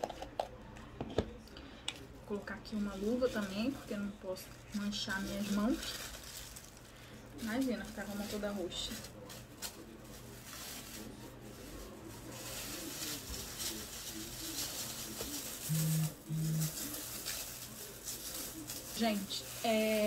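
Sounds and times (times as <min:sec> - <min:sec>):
plastic glove rustling: 0:02.0 - 0:20.0.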